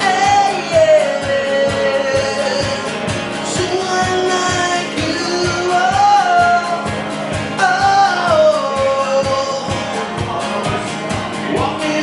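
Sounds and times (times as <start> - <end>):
man singing: 0.0 - 12.0
strummed acoustic guitar: 0.0 - 12.0.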